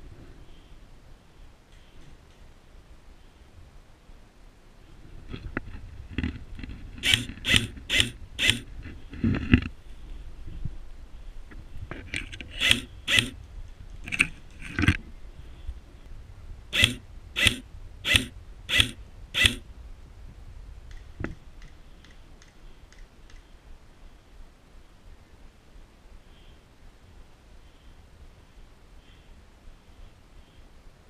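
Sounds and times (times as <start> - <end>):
airsoft rifle shots: 16.8 - 19.6.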